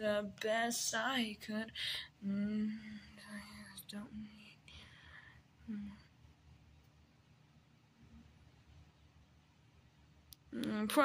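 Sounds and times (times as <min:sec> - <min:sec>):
faint whispering: 0:01.6 - 0:06.2
soft voice humming: 0:02.2 - 0:04.7, 0:05.6 - 0:06.2.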